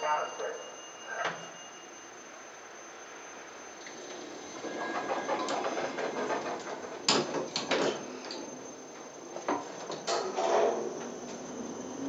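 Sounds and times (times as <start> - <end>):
lift machinery whirring and rattling: 2.2 - 12.0.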